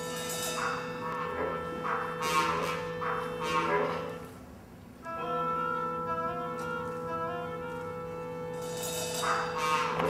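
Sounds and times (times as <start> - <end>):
bright swelling band accents: 0.0 - 4.4, 5.0 - 10.0
symphonic band holding a chord: 0.0 - 4.4, 5.0 - 10.0.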